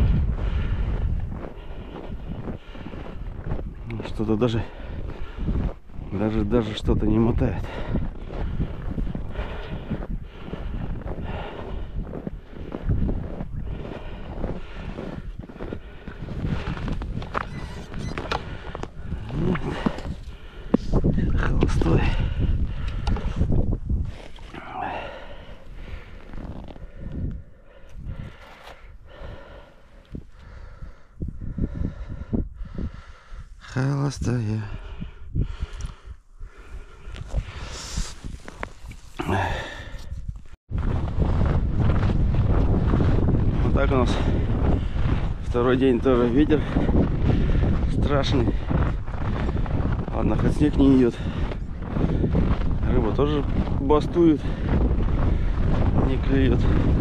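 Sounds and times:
wind buffeting microphone: 0.0s - 57.0s
footsteps crunching through snow: 0.9s - 6.9s, 7.7s - 21.9s, 25.6s - 27.0s, 37.1s - 57.0s.

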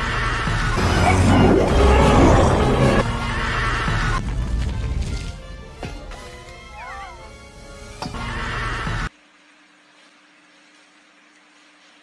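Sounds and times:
soundtrack music: 0.0s - 9.1s.

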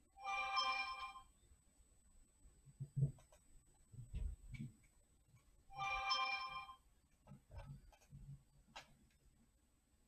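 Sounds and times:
faint clicks and soft knocks: 2.4s - 5.6s, 7.0s - 9.4s.

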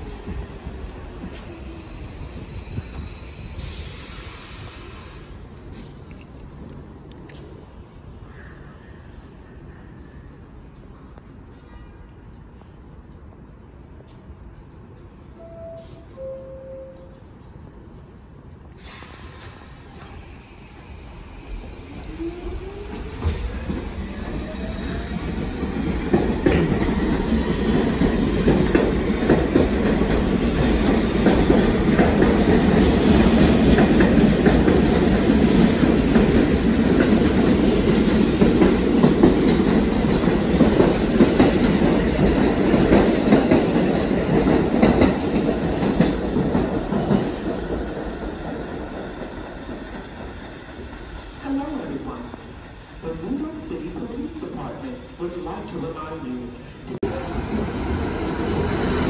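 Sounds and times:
subway train motors whining: 0.0s - 59.0s
train wheels clattering on rails: 22.1s - 51.1s.

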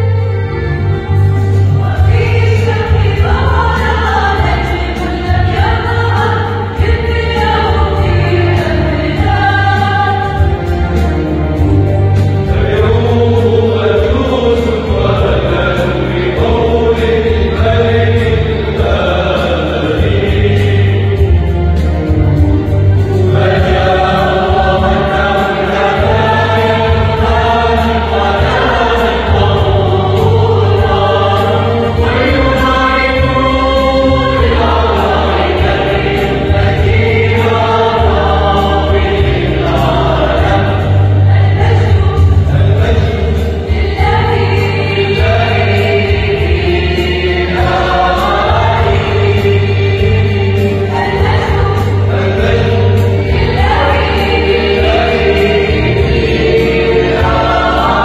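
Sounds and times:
mixed choir singing a hymn: 0.0s - 58.0s.

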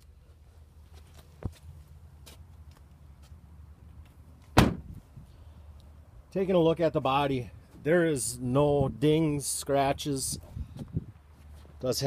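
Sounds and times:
car door slamming: 4.5s - 4.9s.

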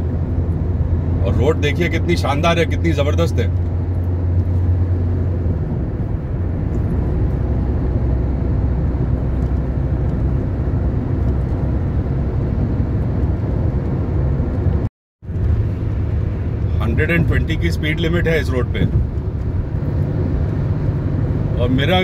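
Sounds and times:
road and engine noise in car: 0.0s - 22.0s.

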